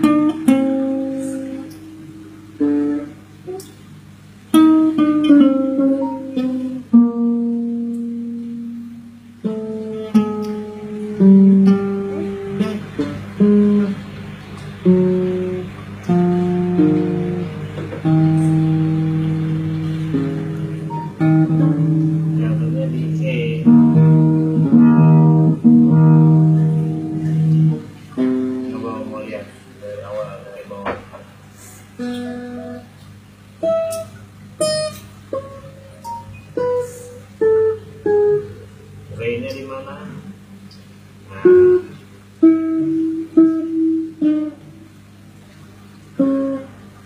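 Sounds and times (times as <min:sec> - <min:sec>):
plucked string note: 0:00.0 - 0:03.8, 0:04.5 - 0:29.4, 0:32.0 - 0:32.9, 0:33.6 - 0:39.7, 0:41.3 - 0:44.8
acoustic guitar chord ringing: 0:00.0 - 0:30.5, 0:31.6 - 0:45.3, 0:46.1 - 0:47.0
low steady hum: 0:00.0 - 0:47.0.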